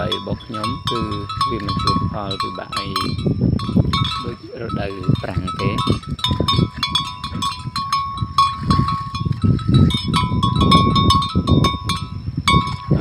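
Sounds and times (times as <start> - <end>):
bell clanking: 0.0 - 13.0
buffalo chewing grass: 0.0 - 13.0.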